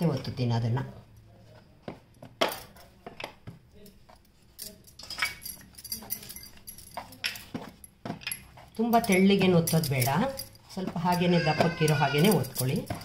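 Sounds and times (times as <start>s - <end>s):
hands pressing dough: 1.7s - 4.3s, 10.7s - 13.0s
bangles clinking: 2.1s - 13.0s.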